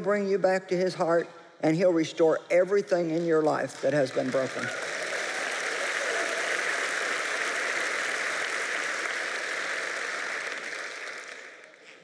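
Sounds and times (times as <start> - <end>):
audience applauding: 3.6 - 12.0.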